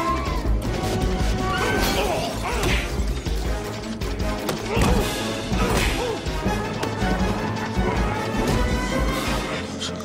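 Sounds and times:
loud film score: 0.0s - 10.0s.

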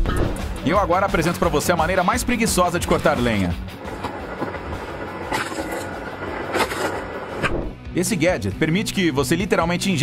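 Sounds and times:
log splitter running: 0.4s - 7.5s.

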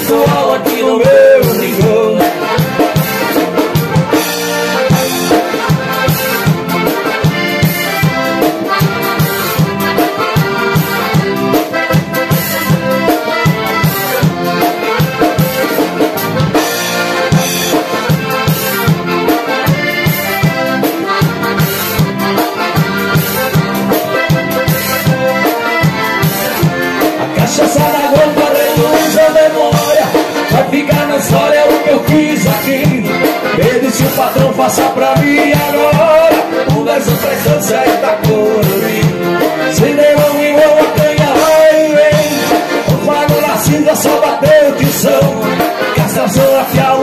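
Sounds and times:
accordions playing melody: 0.0s - 47.0s.

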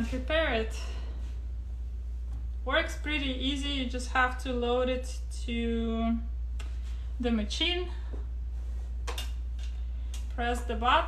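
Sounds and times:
steady low hum: 0.0s - 11.0s
fabric rustles: 8.4s - 9.1s.

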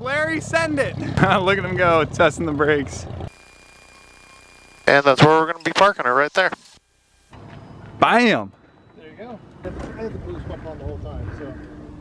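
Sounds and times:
man talking: 0.0s - 3.1s, 4.8s - 6.6s
man laughing: 0.9s - 1.7s.

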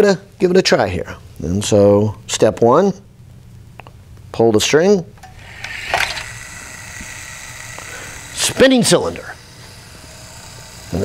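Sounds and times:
cylinder spinning whir: 5.2s - 11.0s.

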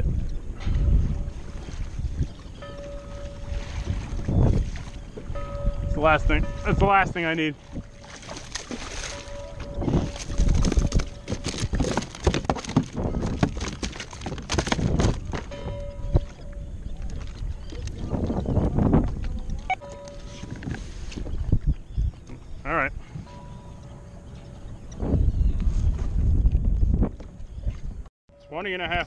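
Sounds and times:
water slapping: 0.6s - 5.9s, 6.5s - 16.4s
fish splashing at the surface: 8.1s - 9.4s.

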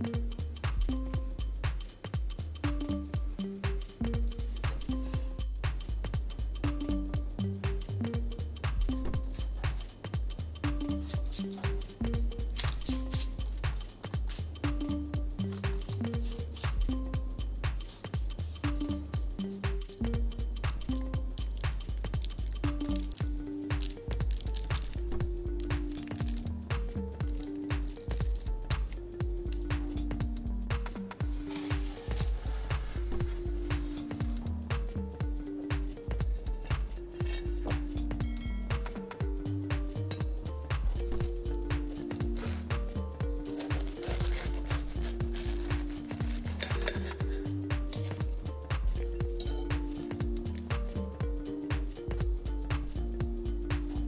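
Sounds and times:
background music with beat: 0.0s - 54.0s.

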